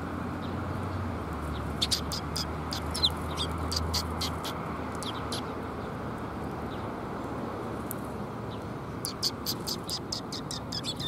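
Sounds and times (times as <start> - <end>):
sparrows chirping: 0.4 - 7.3, 8.4 - 11.0.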